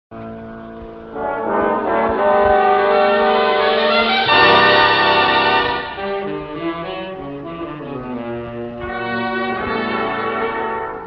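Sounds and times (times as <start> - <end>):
orchestra holding sustained chords: 0.5 - 11.0.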